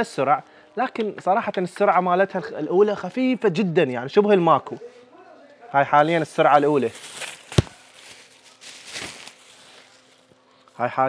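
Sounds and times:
air cooler fan humming: 0:05.8 - 0:11.0
plastic bag rustling: 0:06.1 - 0:10.3.

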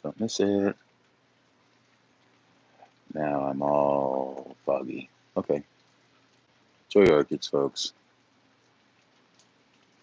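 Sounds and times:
faint steady rain: 0:00.0 - 0:10.0.

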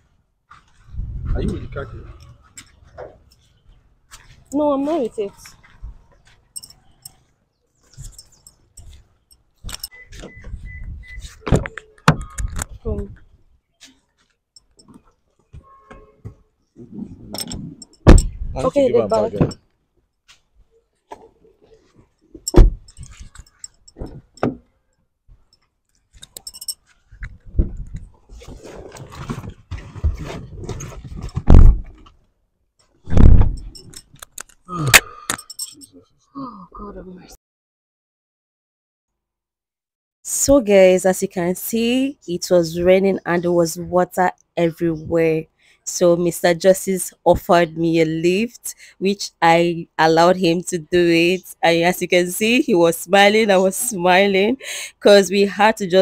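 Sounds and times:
handling rattles: 0:04.6 - 0:07.2, 0:07.8 - 0:10.5, 0:17.3 - 0:19.7, 0:21.2 - 0:24.6, 0:25.4 - 0:32.2, 0:33.1 - 0:34.6, 0:35.3 - 0:35.9
light metallic jingling: 0:06.1 - 0:10.2, 0:14.6 - 0:16.2, 0:17.4 - 0:19.7, 0:22.4 - 0:27.4, 0:33.5 - 0:36.1
clicks and clinks: 0:06.6 - 0:07.2, 0:07.9 - 0:10.0, 0:17.4 - 0:18.4, 0:22.4 - 0:24.5, 0:25.5 - 0:27.3, 0:33.6 - 0:35.9.

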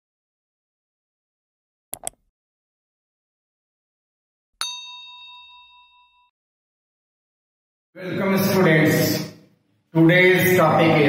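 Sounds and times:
bell-like chime ding: 0:04.6 - 0:06.3.

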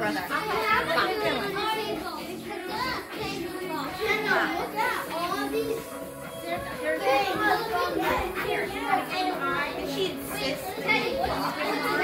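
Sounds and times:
children's voices chattering: 0:00.0 - 0:12.0.

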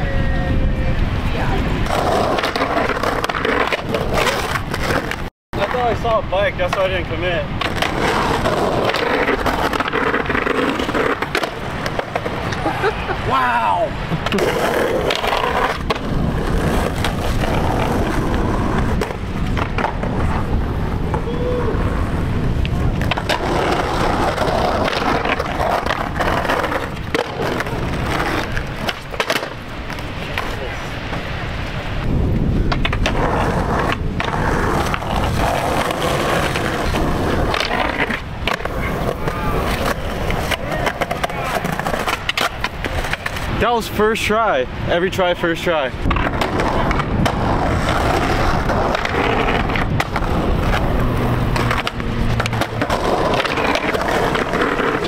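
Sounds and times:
skateboard wheels rumbling: 0:00.0 - 0:55.0
skateboard grinding on curbs: 0:01.3 - 0:43.8, 0:45.8 - 0:55.0
skateboard clacks and knocks: 0:07.6 - 0:12.7, 0:14.1 - 0:21.3, 0:22.6 - 0:30.6, 0:32.6 - 0:43.5, 0:46.0 - 0:55.0.

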